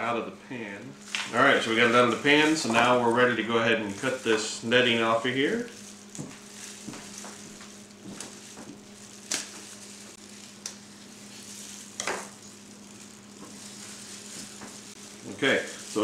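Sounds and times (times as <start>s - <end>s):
low hum and hiss: 0.0s - 16.0s
scissors snipping netting: 9.2s - 9.6s.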